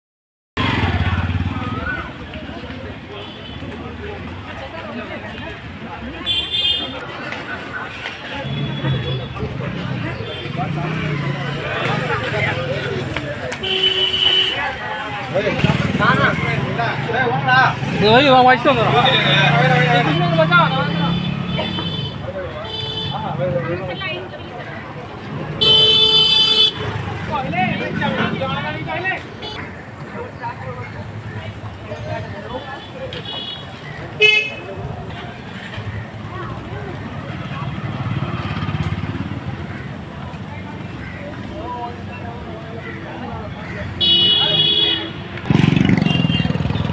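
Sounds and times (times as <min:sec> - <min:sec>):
voices in the street: 0:00.6 - 0:46.9
vehicle horn tooting: 0:13.6 - 0:14.6, 0:20.0 - 0:23.2, 0:25.6 - 0:26.9, 0:44.0 - 0:45.3.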